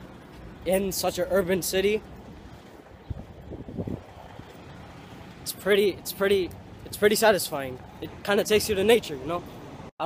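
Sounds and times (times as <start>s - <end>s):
low bumps: 0.0s - 5.5s
wind rumble on microphone: 2.0s - 5.5s.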